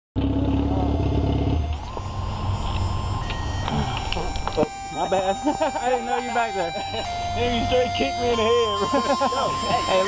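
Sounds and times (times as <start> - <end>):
motorcycle engine running: 0.2 - 10.0.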